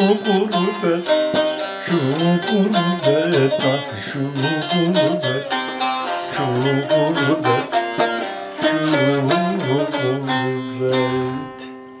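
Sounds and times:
long-necked lute strummed with a pick: 0.0 - 12.0.

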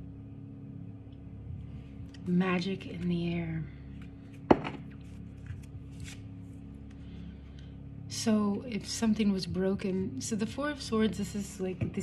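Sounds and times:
faint steady hum: 0.0 - 12.0
card rustling: 4.0 - 6.3
card tapping on tabletop: 4.5 - 4.8.

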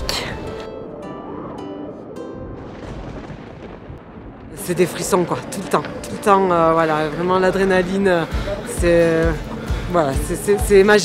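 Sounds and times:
plucked string soundtrack music: 0.0 - 3.7, 5.2 - 11.0.

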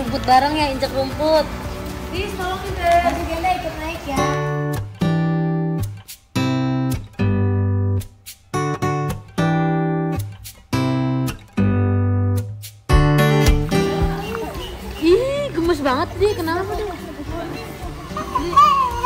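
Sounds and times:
guitar chords strummed: 4.3 - 14.3.

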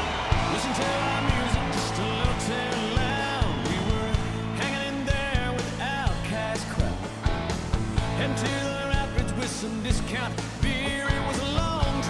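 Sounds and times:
country-rock band playing: 0.0 - 12.0
steady drum beat: 0.0 - 12.0.

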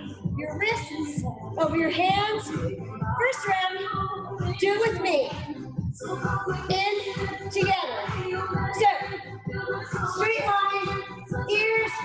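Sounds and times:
high singing voice over beat: 0.0 - 12.0.

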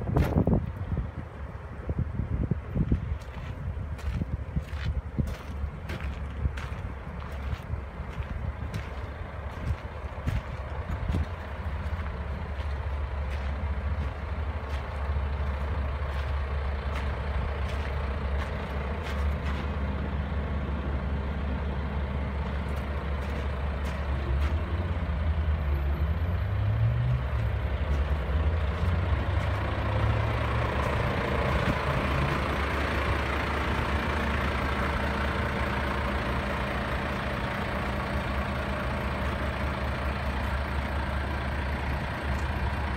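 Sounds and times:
heavy vehicle engine running: 0.0 - 42.9.

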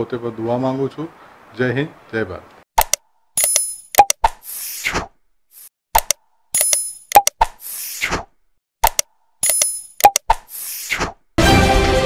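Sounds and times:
sharp mouse clicks: 2.8 - 4.4, 6.0 - 8.1, 8.8 - 11.0.

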